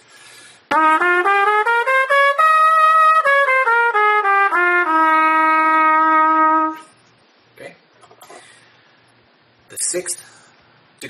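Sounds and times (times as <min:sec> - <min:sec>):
trumpet playing a scale: 0:00.7 - 0:07.0.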